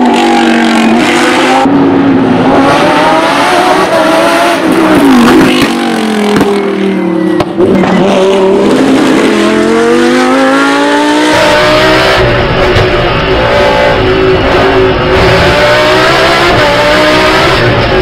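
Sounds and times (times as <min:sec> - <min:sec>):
race car engine revving: 0:00.0 - 0:18.0.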